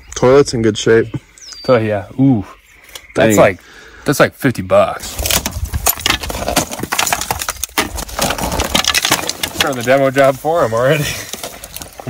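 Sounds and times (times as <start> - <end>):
wood splintering and cracking: 5.0 - 12.0.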